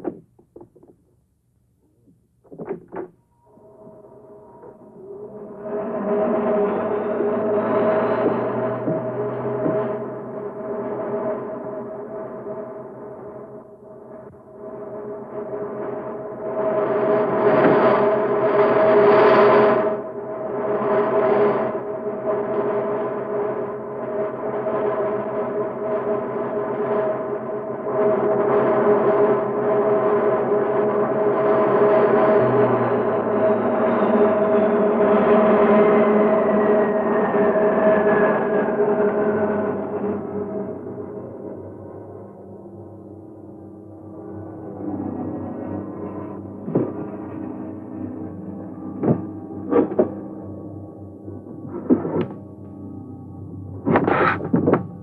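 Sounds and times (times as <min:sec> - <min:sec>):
low hum: 0:00.0 - 0:24.8, 0:39.6 - 0:55.0
gong-like ringing drone: 0:03.2 - 0:55.0.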